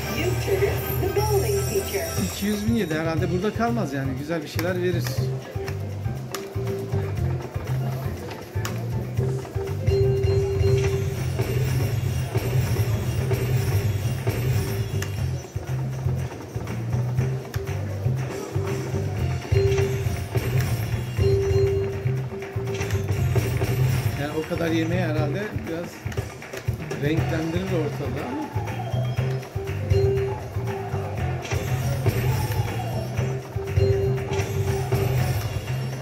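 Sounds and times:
slot machine bells: 0:00.0 - 0:05.4, 0:09.2 - 0:15.8, 0:18.4 - 0:26.4, 0:27.0 - 0:36.0
slot machine bonus music: 0:00.0 - 0:36.0.

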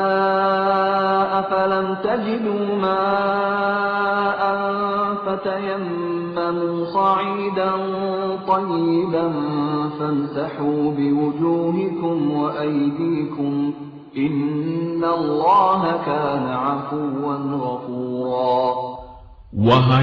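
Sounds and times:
man chanting melodically: 0:00.0 - 0:20.0.

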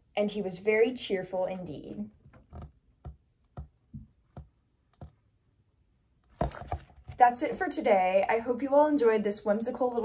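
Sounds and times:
book handling clicks and taps: 0:06.3 - 0:07.2.

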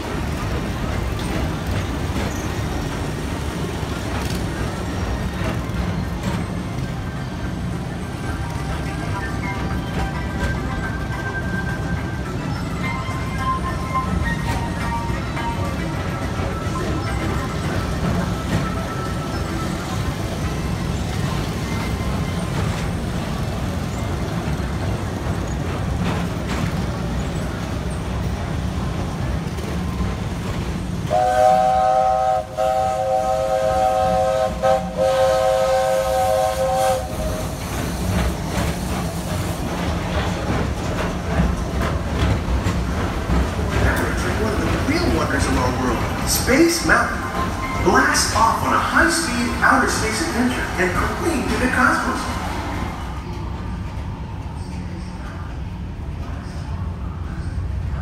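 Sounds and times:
ride car rumbling: 0:00.0 - 0:58.0
steam locomotive chime whistle: 0:31.1 - 0:37.5.

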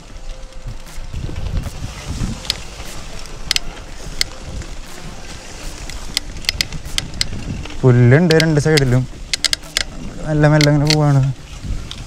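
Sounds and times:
bike rattling clicks: 0:00.0 - 0:12.0
tyres rolling on dirt: 0:00.0 - 0:12.0
wind on microphone: 0:00.0 - 0:12.0.

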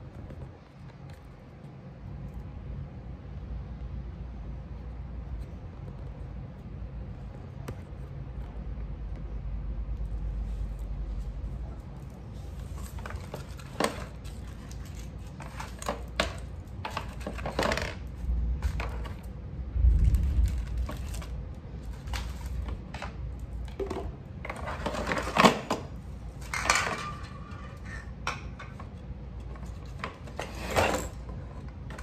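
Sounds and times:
packaging rustling: 0:20.0 - 0:23.2
items set down on tile floor: 0:20.1 - 0:28.9.

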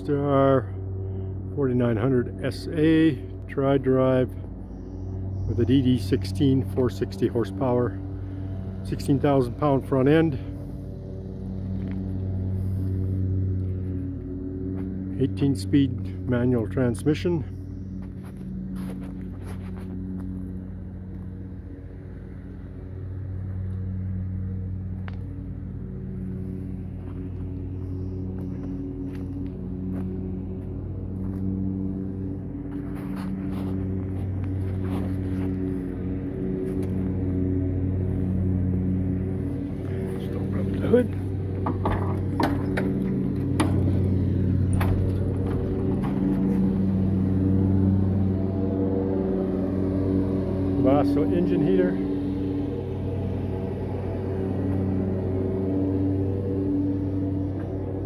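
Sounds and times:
engine drone: 0:00.0 - 0:58.0.

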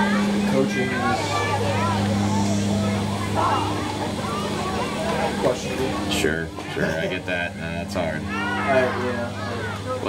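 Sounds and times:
low hum: 0:00.0 - 0:10.0
people talking indistinctly: 0:00.0 - 0:10.0.

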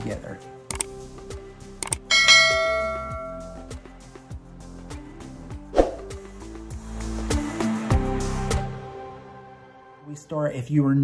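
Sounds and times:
background music with steady beat: 0:00.0 - 0:10.3
mouse click: 0:00.7 - 0:00.9, 0:01.8 - 0:02.0
notification bell chime: 0:02.1 - 0:03.7.

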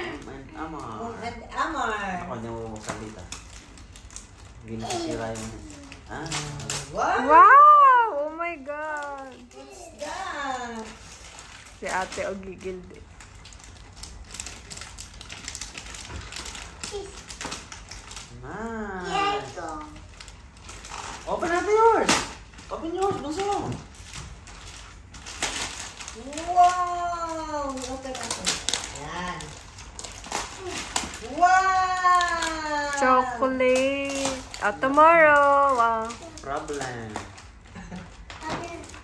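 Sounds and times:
paper bags rustling: 0:00.0 - 0:39.0.

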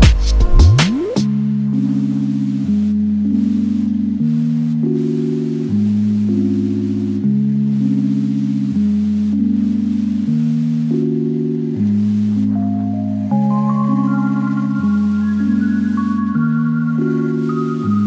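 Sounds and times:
slow organ-like chords: 0:01.3 - 0:18.0.

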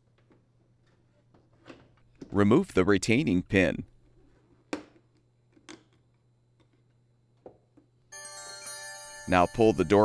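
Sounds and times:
sustained ringing chime: 0:08.1 - 0:10.0.

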